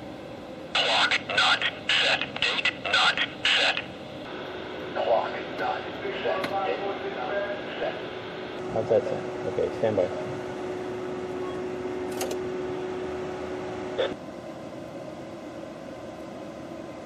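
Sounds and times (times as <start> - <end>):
faint talking: 0.8 - 3.9
voice through two-way radio: 0.8 - 3.9, 5.0 - 8.0.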